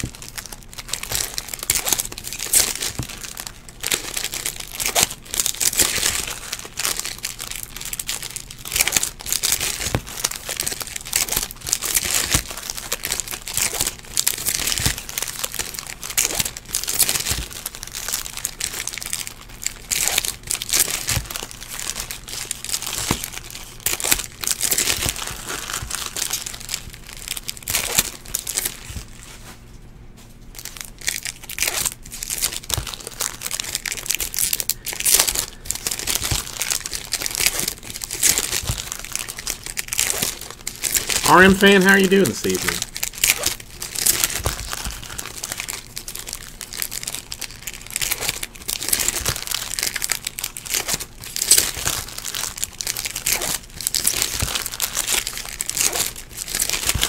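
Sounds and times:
wrappers crinkling and tearing: 0.0s - 29.7s, 30.4s - 57.0s.

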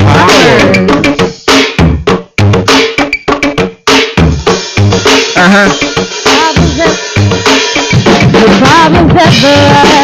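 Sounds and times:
loud live band: 4.4s - 10.0s.

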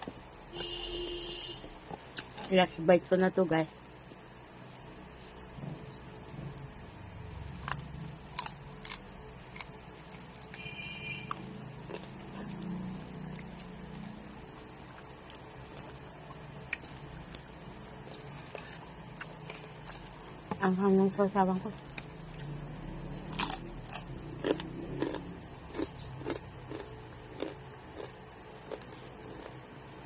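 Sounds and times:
person chewing food: 7.4s - 21.0s, 21.7s - 29.8s.

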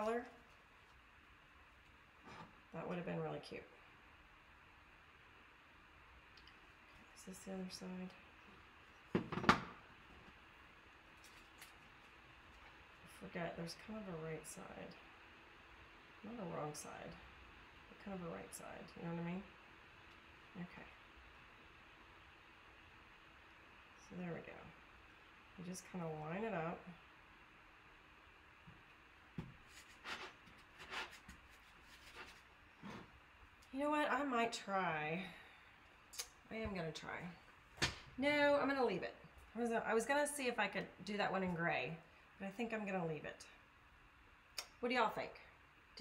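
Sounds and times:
soft brushing rubs: 29.4s - 33.2s.

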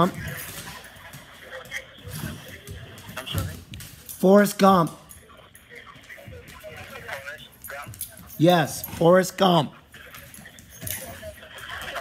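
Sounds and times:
muffled voice on speakerphone: 0.0s - 12.0s.

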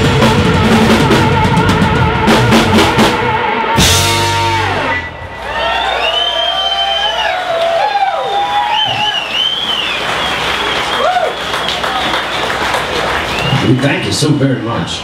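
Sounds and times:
audience cheering: 4.7s - 14.9s
audience applauding: 5.4s - 14.8s.

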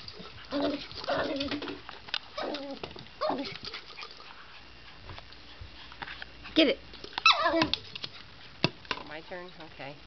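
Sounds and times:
dog whining yelp: 2.4s - 3.5s, 7.2s - 7.7s.

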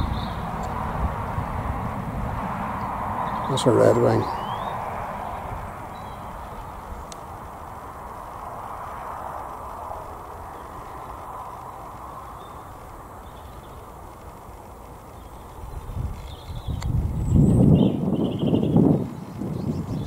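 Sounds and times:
faint outdoor background: 0.0s - 20.0s
low rumbling on microphone: 0.0s - 20.0s
faint high bird calls: 2.8s - 6.9s.

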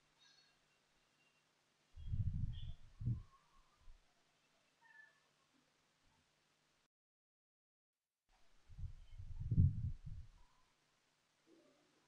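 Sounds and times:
faint room hiss: 0.0s - 6.9s, 8.3s - 12.0s.

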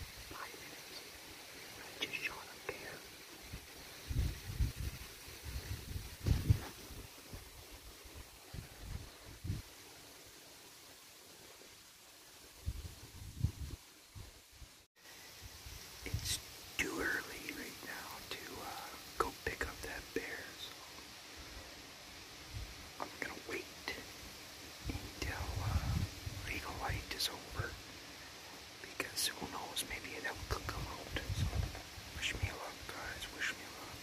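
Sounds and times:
man whispering: 0.1s - 3.6s, 16.0s - 21.0s, 22.9s - 34.0s.

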